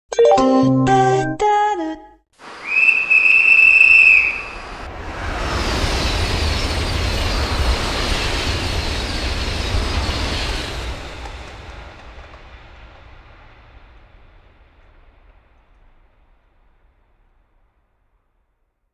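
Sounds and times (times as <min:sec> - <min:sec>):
high-speed train passing: 0:02.4 - 0:18.4.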